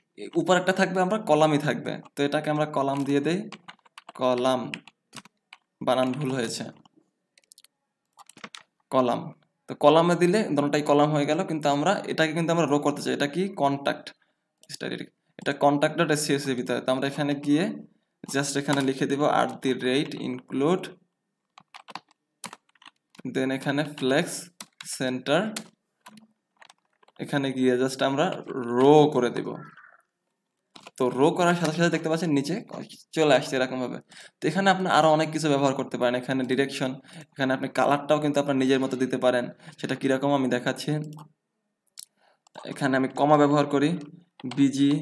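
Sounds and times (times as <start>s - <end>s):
man speaking: 0.0s - 3.6s, 4.2s - 4.8s, 5.8s - 6.9s, 8.9s - 21.0s, 23.2s - 25.7s, 27.2s - 29.9s, 31.0s - 41.3s, 42.6s - 45.0s
speech: 0.2s - 3.5s, 4.2s - 4.8s, 5.8s - 6.8s, 8.9s - 21.0s, 23.2s - 25.6s, 27.2s - 29.9s, 31.0s - 41.2s, 42.6s - 45.0s
computer keyboard typing: 2.0s - 9.5s, 18.2s - 20.6s, 21.4s - 30.1s, 30.7s - 32.0s, 43.9s - 45.0s.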